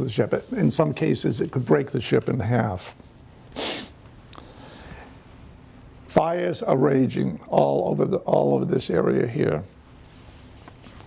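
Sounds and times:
person's sharp breath: 0:03.6 - 0:05.2.

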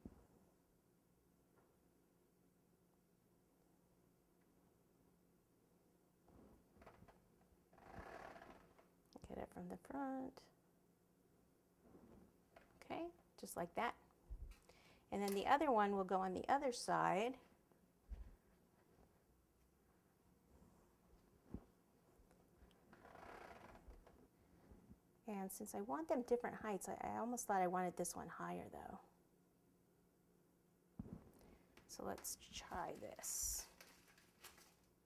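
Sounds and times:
faint soft noise: 0:30.9 - 0:35.0.

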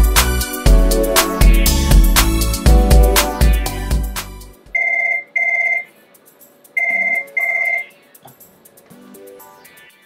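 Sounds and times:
electronic telephone ringing: 0:04.8 - 0:05.9, 0:06.8 - 0:08.0.

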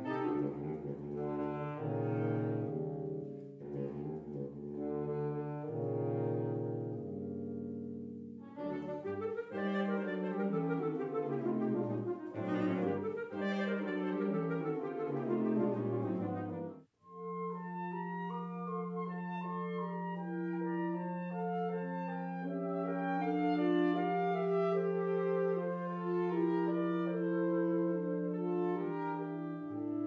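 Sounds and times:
saxophone quartet playing: 0:00.0 - 0:30.0.

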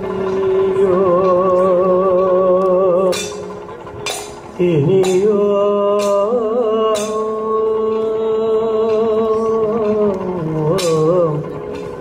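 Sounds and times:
man singing ornamented line: 0:00.2 - 0:03.5, 0:04.6 - 0:11.9
sharp metallic strikes: 0:02.9 - 0:12.0.

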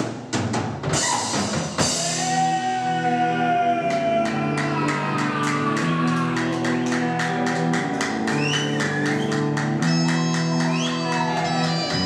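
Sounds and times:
fast drums: 0:00.0 - 0:12.0
distorted electric guitars: 0:01.0 - 0:12.0
high guitar notes: 0:04.4 - 0:12.0.

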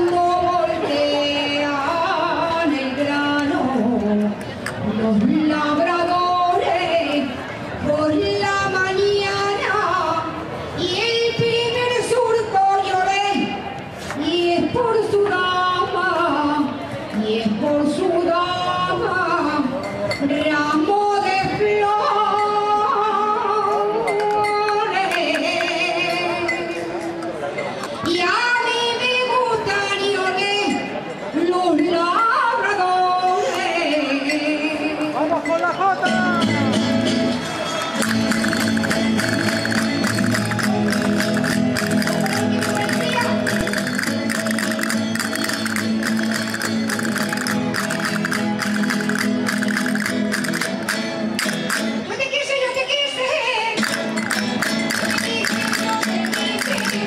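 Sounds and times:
woman singing folk song: 0:00.0 - 0:26.8, 0:28.1 - 0:35.2, 0:52.0 - 0:54.0
folk string ensemble: 0:36.0 - 0:57.0
castanet clicks: 0:37.9 - 0:51.8.

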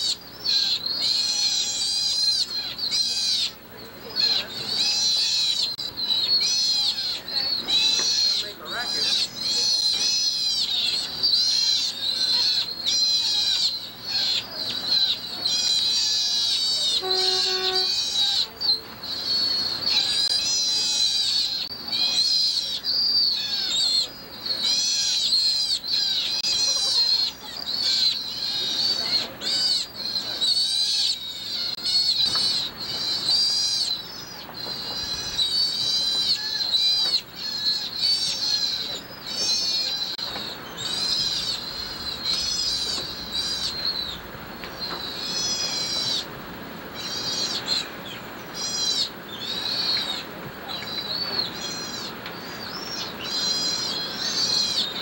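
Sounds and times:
sea otters squealing: 0:00.0 - 0:46.4, 0:47.0 - 0:55.0.

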